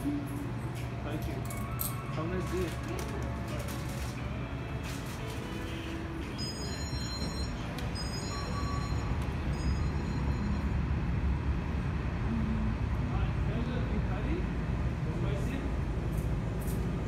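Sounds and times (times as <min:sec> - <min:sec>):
low rumble of buses and trains: 0:00.0 - 0:17.0.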